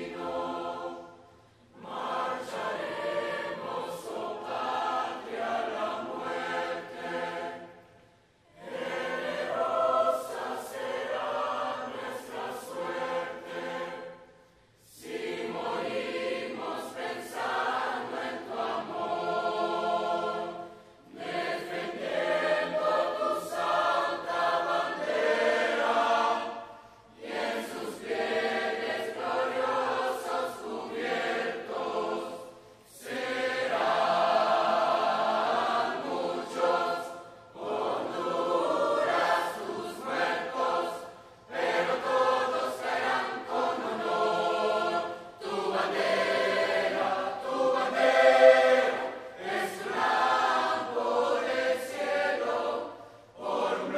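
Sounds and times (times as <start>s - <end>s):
choir of young voices singing: 0.0s - 53.9s.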